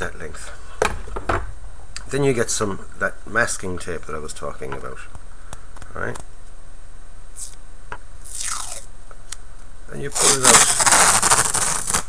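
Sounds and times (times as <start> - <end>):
masking tape peeling crackle: 7.4 - 7.6, 8.2 - 8.9, 10.1 - 12.0.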